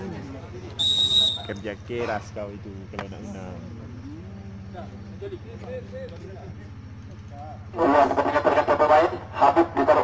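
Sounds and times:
low electrical hum: 0.0s - 10.0s
man speaking over loudspeakers: 7.6s - 10.0s.

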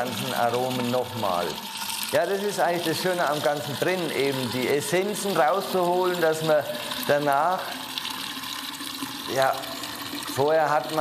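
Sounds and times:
running liquid rushing: 0.0s - 11.0s.

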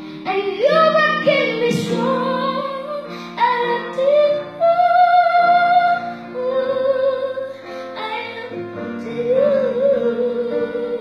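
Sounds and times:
piano chords: 0.0s - 11.0s
boy singing into a microphone: 0.3s - 11.0s.

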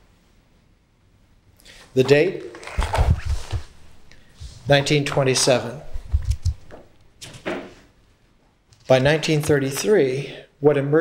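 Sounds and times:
person speaking: 1.8s - 6.8s, 8.8s - 11.0s
paper rustling: 2.3s - 7.5s.

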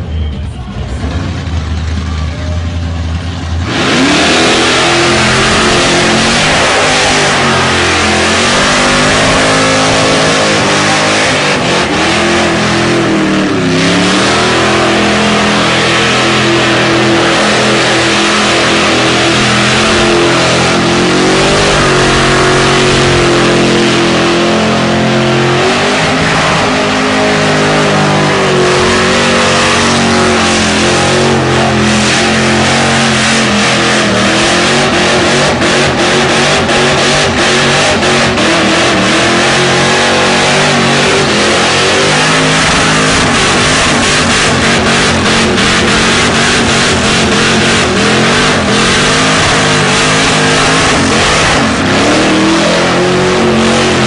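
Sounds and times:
car engine at high revs: 1.0s - 54.0s
spinning tyres hissing: 3.6s - 52.6s.

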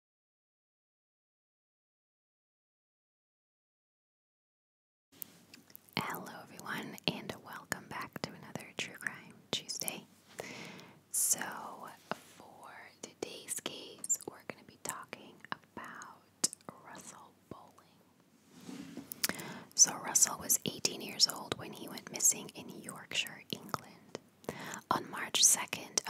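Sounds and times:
woman whispering: 5.9s - 10.1s, 11.1s - 18.0s, 19.2s - 26.0s.

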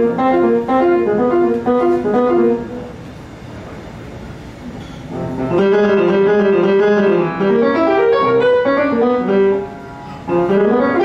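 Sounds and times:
piano and flute music: 0.0s - 2.9s, 5.2s - 11.0s
low rumble and hiss of room noise: 0.0s - 11.0s.

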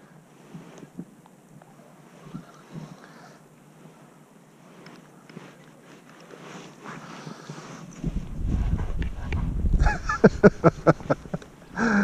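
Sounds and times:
faint open-air ambience: 0.0s - 12.0s
wind buffeting microphone: 7.6s - 11.7s.

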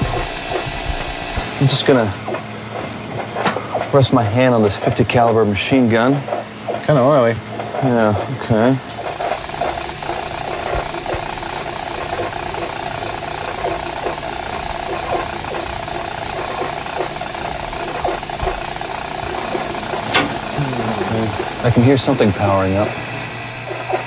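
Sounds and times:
high steady whines: 0.0s - 4.6s, 5.7s - 24.0s.

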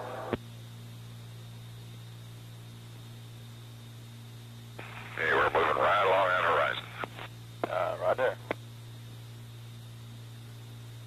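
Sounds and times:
steady low hum: 0.0s - 11.0s
radio voice transmission: 4.8s - 8.6s.

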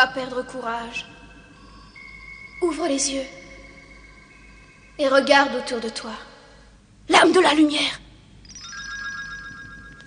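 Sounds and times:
soft shimmering synthesizer chord: 0.0s - 6.8s, 8.4s - 10.0s.

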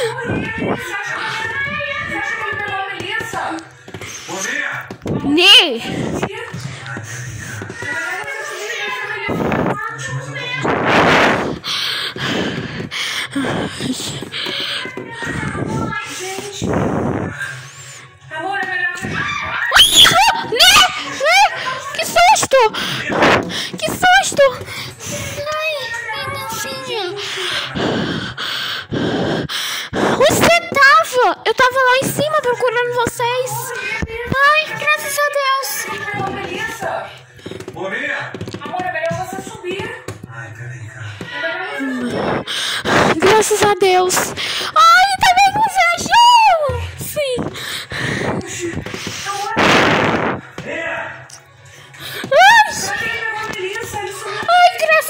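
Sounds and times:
faint background music: 0.0s - 55.0s
person breathing heavily: 5.8s - 8.0s, 11.1s - 18.2s, 22.7s - 30.5s, 41.0s - 43.3s, 44.2s - 44.8s, 46.8s - 50.6s, 51.6s - 52.4s.

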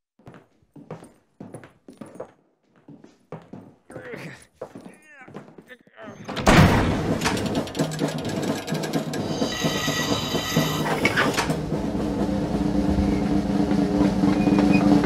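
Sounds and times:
workshop machinery clatter: 6.3s - 15.0s
high ringing tone: 9.2s - 11.3s.

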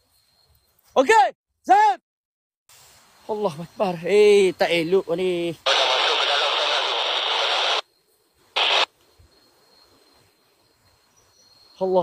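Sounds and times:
radio static hiss bursts: 5.6s - 7.8s, 8.5s - 8.9s.

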